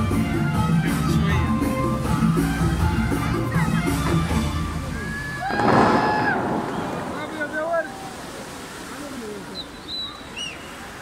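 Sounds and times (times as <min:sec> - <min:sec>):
fountain jets crashing down as spray: 0:03.8 - 0:11.0.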